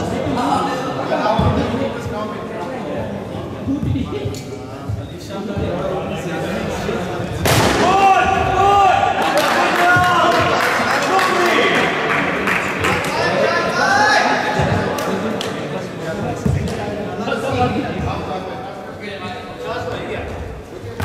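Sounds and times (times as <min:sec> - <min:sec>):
players shouting in a hall: 0:07.6 - 0:15.1.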